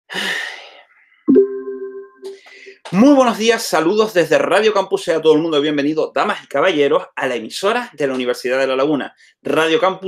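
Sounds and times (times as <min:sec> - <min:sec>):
electronic chime: 0:01.3 - 0:02.4.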